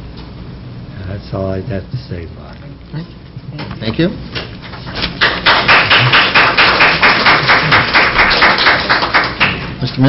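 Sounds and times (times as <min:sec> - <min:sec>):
audience applauding: 0:04.7 - 0:09.8.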